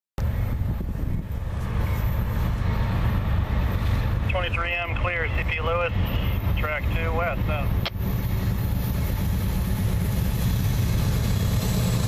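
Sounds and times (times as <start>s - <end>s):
wind buffeting microphone: 0.2s - 4.3s.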